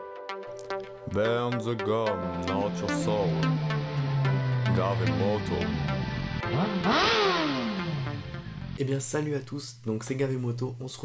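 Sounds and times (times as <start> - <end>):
music: 0.0 - 9.1
motorcycle engine revving: 2.4 - 8.8.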